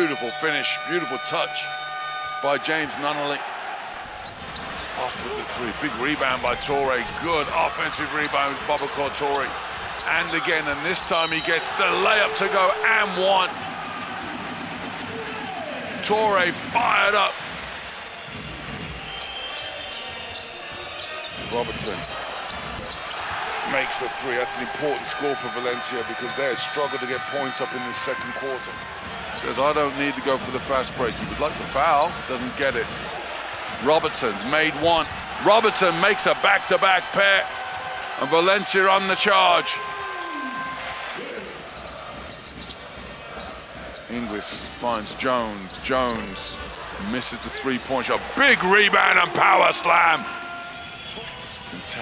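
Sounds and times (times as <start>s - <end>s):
arena crowd noise: 0.0s - 52.0s.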